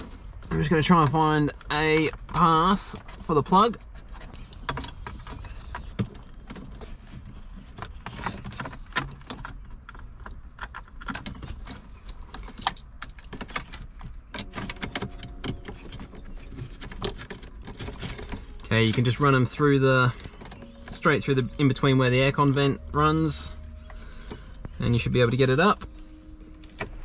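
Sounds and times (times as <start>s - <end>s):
cables and plugs rattling: 1.6s - 27.0s.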